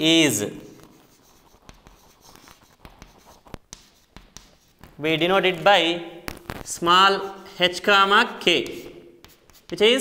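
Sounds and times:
chalk scratching on chalkboard: 0:00.6 - 0:05.7, 0:08.3 - 0:10.0
chalk tapping: 0:00.6 - 0:07.6, 0:08.2 - 0:10.0.

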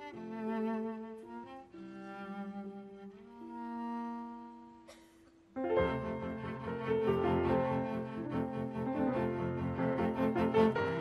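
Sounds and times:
cello with vibrato: 0:00.0 - 0:04.9, 0:05.6 - 0:11.0
piano: 0:00.0 - 0:11.0.

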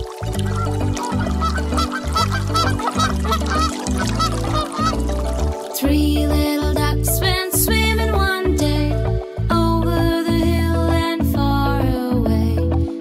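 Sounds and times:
children's song backing music: 0:05.5 - 0:13.0.

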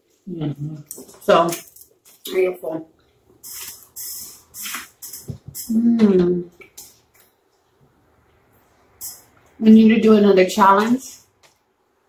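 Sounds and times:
hissing breaths through lips: 0:03.4 - 0:05.7.

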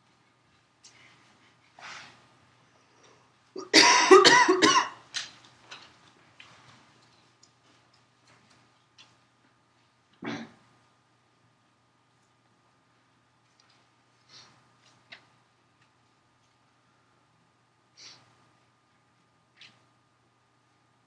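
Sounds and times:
person coughing: 0:03.6 - 0:05.0, 0:10.2 - 0:10.6.

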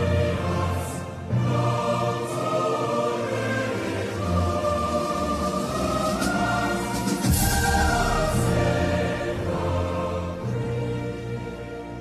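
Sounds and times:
choir holding sustained chords: 0:00.0 - 0:12.0.

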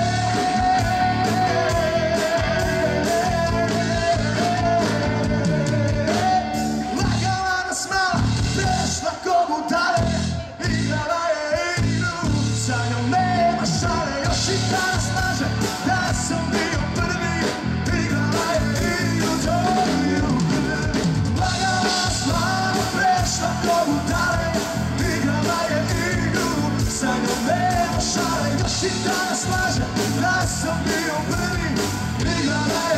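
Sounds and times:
live band with drums and keyboards: 0:00.0 - 0:32.9
man singing into a microphone: 0:00.0 - 0:32.9.

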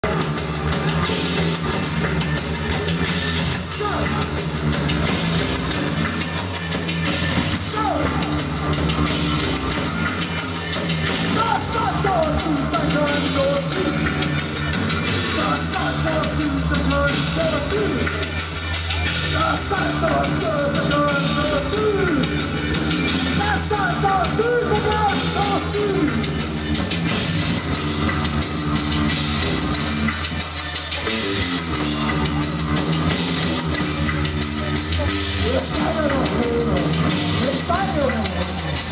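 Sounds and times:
bass guitar: 0:00.0 - 0:38.9
drum kit with cymbals: 0:00.0 - 0:38.9
live band playing loud music: 0:00.0 - 0:38.9.

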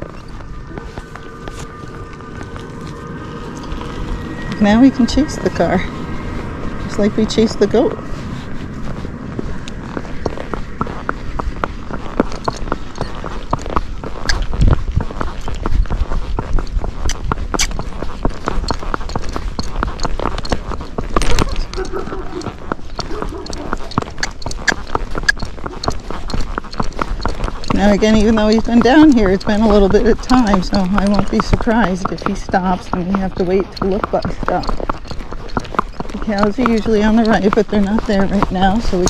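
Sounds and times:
horse hooves on pavement: 0:00.0 - 0:39.0.

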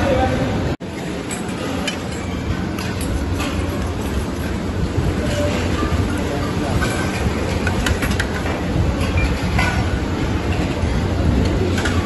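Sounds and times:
ceiling fans running: 0:00.0 - 0:12.0
crowded hall din: 0:00.0 - 0:12.0.

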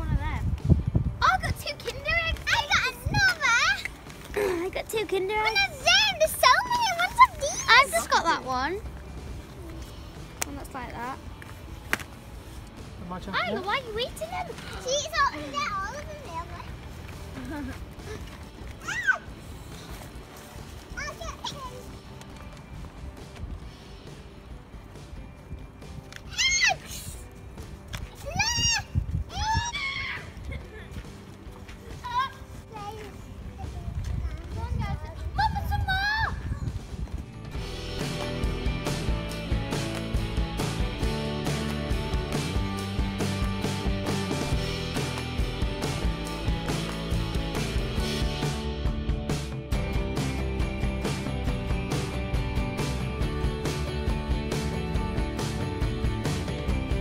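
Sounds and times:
girls chattering excitedly: 0:01.2 - 0:08.9, 0:13.3 - 0:16.8
child squealing: 0:18.8 - 0:19.3, 0:26.3 - 0:26.9, 0:28.4 - 0:30.4.

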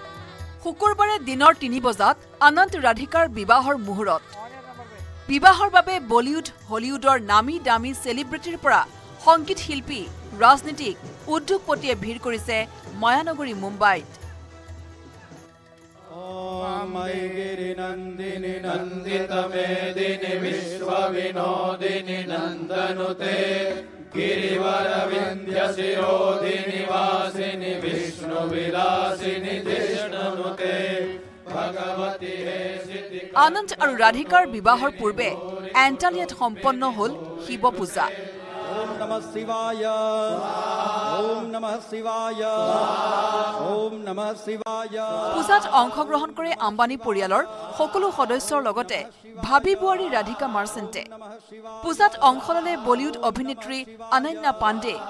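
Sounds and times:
mantra chanting: 0:16.1 - 0:28.2, 0:31.6 - 0:55.0.

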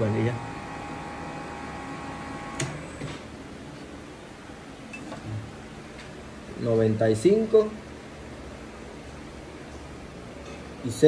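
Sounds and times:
faint machine hum: 0:00.0 - 0:11.0
machine switch click: 0:02.5 - 0:02.8.

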